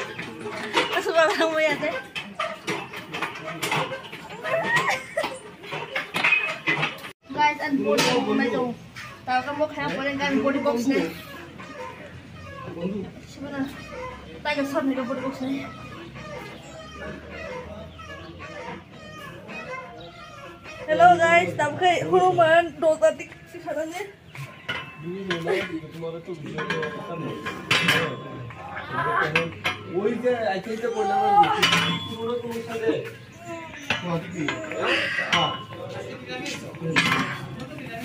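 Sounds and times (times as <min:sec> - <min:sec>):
background chatter of voices: 0:00.0 - 0:38.0
children playing and talking: 0:00.0 - 0:38.0.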